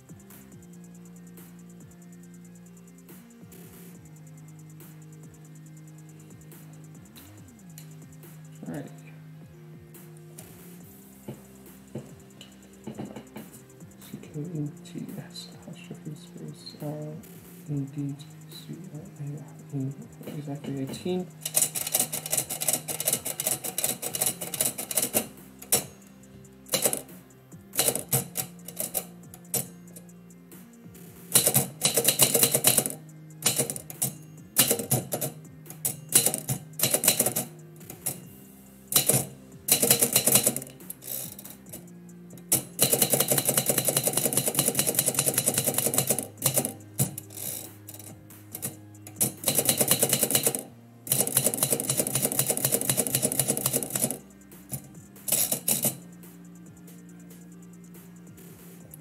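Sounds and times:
typewriter key strikes: 20.2 - 26.0, 26.7 - 27.1, 27.8 - 29.7, 31.3 - 38.2, 38.9 - 41.8, 42.4 - 56.0.

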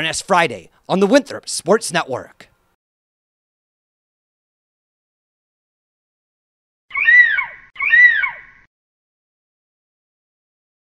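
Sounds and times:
eagle cry: 6.9 - 8.7.

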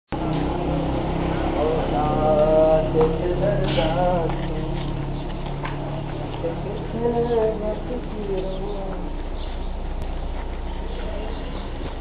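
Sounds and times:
people's voices: 0.2 - 12.0
steady low rumble: 0.9 - 12.0.

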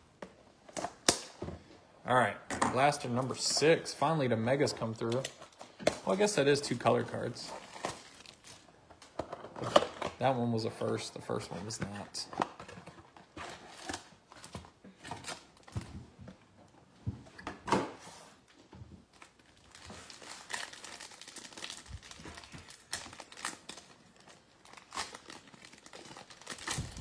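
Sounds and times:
foil wrapper crinkling and tearing: 19.1 - 27.0.

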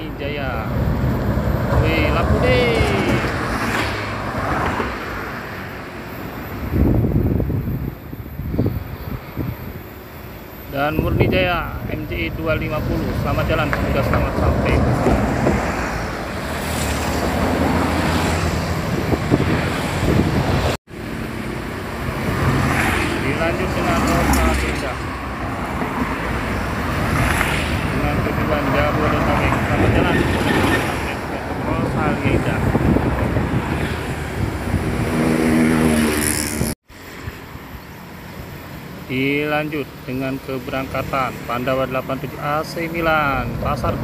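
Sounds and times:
buses passing: 0.0 - 44.0
road traffic passing: 0.0 - 44.0.

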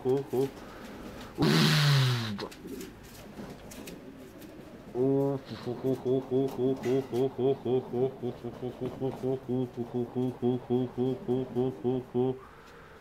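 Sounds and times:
pigeon cooing: 0.0 - 12.7.

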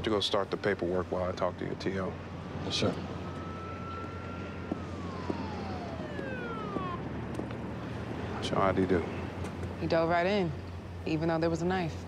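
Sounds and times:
distant police siren: 0.0 - 12.0.

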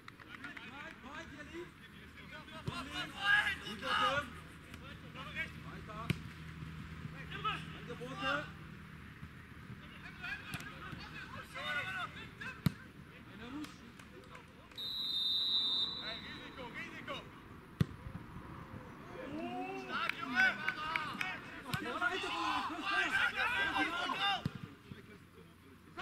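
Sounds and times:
players shouting: 2.5 - 4.5, 9.9 - 13.0, 19.0 - 24.7
referee's whistle: 14.8 - 16.8
football kicked: 17.8 - 18.0.

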